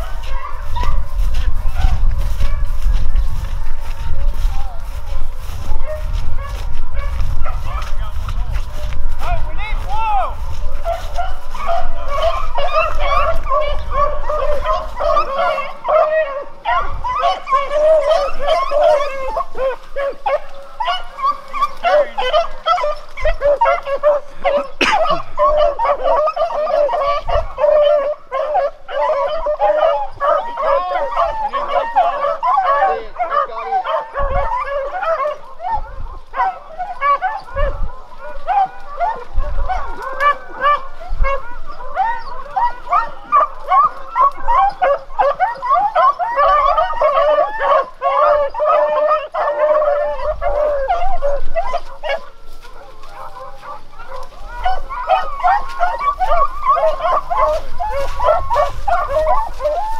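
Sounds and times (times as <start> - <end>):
pack of dogs baying: 0.0 - 59.9.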